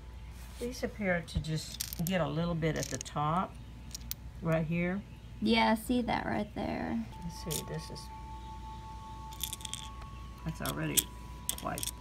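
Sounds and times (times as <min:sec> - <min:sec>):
faint steady high tone: 0:07.1 - 0:12.0
metal tongs clinking on shells: 0:09.3 - 0:12.0.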